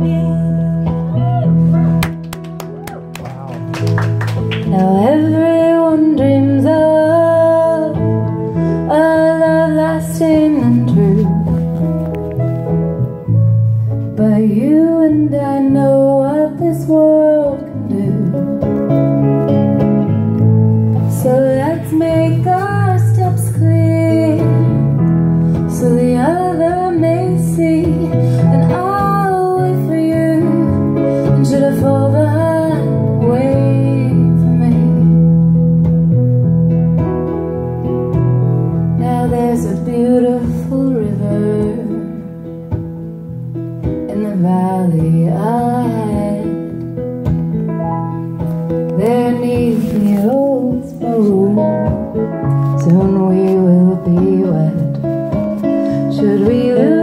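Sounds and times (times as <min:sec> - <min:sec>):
woman singing a slow ballad: 0:00.0 - 0:01.4, 0:04.6 - 0:11.9, 0:14.0 - 0:18.8, 0:21.0 - 0:35.6, 0:39.0 - 0:42.6, 0:43.8 - 0:47.0, 0:48.8 - 0:57.0
acoustic guitar accompaniment: 0:00.0 - 0:57.0.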